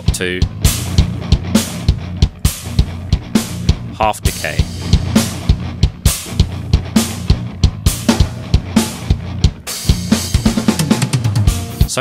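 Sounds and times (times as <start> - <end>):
drum kit groove: 0.0 - 12.0
sustained bass line: 0.0 - 12.0.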